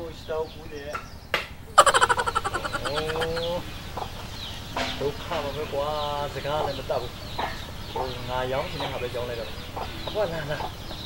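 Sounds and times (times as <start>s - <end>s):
chicken clucking: 1.8s - 4.3s.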